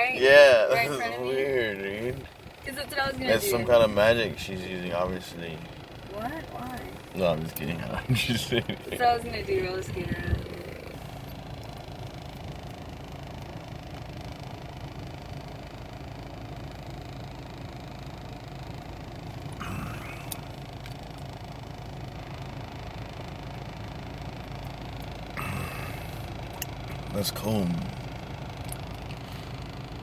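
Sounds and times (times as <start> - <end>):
car cabin hum: 0.0 - 30.0
breathy gasp: 25.4 - 26.2.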